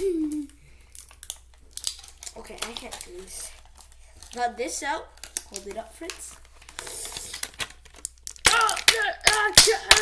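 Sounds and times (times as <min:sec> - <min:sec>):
plastic packaging crinkling: 0:00.8 - 0:10.0.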